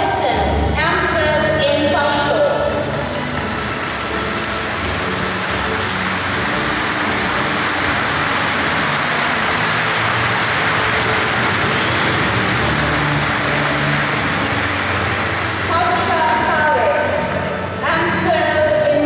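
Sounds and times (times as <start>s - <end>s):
audience applauding: 2.6s - 17.3s.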